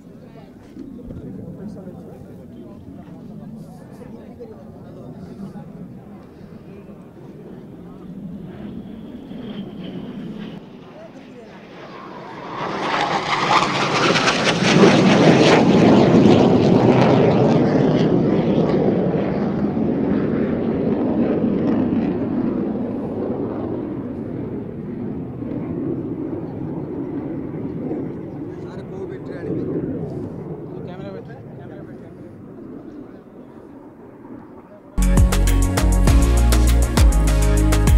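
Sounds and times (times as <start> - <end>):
jet engines flying past: 0.0 - 35.0.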